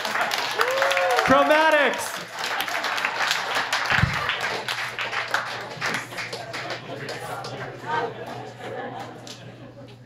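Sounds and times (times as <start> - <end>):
audience clapping: 0.0 - 9.1.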